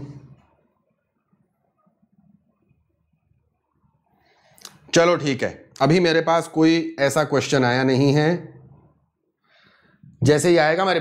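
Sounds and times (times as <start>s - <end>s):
man speaking: 0.0s - 0.4s, 4.9s - 8.6s, 10.2s - 11.0s.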